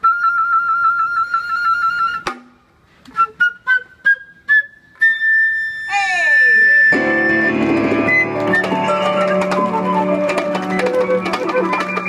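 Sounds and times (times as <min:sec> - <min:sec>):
flute long high note: 0:03.1 - 0:12.0.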